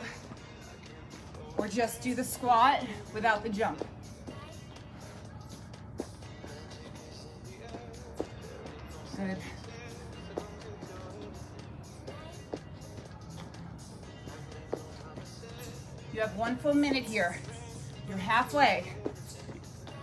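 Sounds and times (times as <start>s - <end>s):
background workout music: 0.0s - 20.0s.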